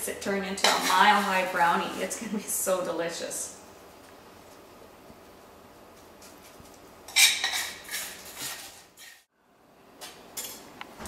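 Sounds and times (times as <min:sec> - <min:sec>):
utensil scraping steel bowl: 0:00.6 - 0:01.6, 0:07.1 - 0:09.3.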